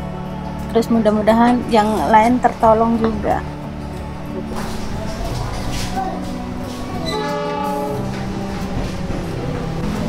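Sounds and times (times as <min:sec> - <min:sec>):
train horn blowing: 0:07.0 - 0:08.9.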